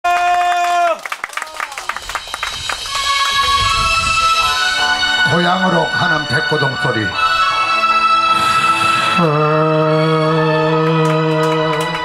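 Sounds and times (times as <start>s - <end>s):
audience clapping: 0.0s - 3.6s, 10.4s - 12.0s
backing music with sustained tones: 1.9s - 12.0s.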